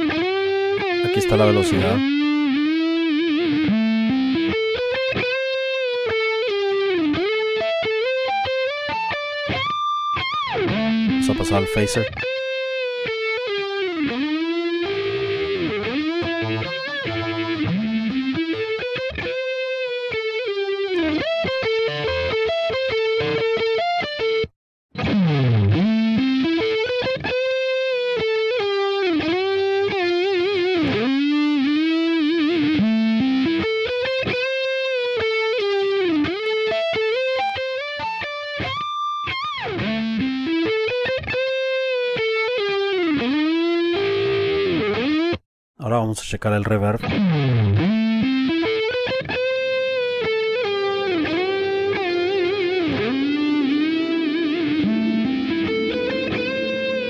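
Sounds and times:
distorted electric guitar with phaser: 14.9s - 23.5s, 47.1s - 57.0s.

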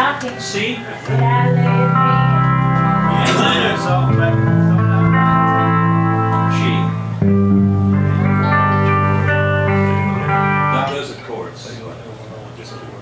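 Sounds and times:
country band music: 0.0s - 11.2s
pedal steel guitar: 0.0s - 11.3s
acoustic guitar chords: 1.1s - 11.2s.

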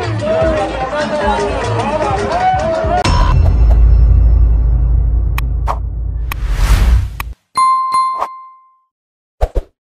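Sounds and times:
bell-like ding: 7.6s - 8.9s.

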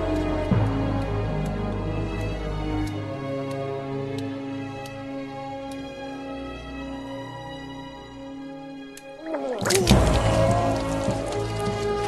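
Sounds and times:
background music: 0.0s - 12.0s
cartoonish vomiting: 9.2s - 11.5s.

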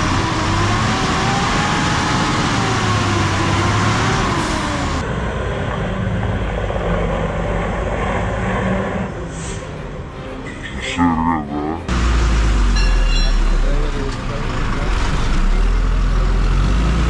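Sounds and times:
lorry diesel engine under load: 0.0s - 10.4s, 11.8s - 17.0s.

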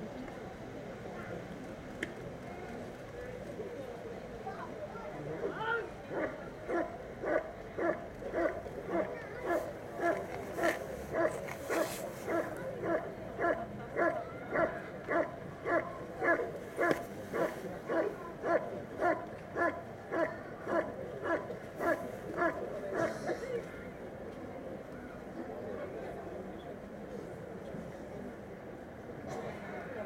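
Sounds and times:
dog barking: 6.1s - 23.2s.

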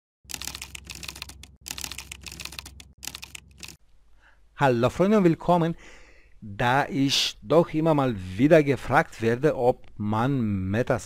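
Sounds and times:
fast typing on keyboard: 0.3s - 3.8s.

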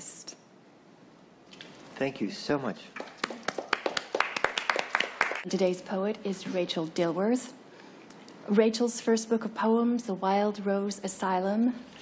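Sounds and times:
small audience applauding: 3.0s - 5.5s.

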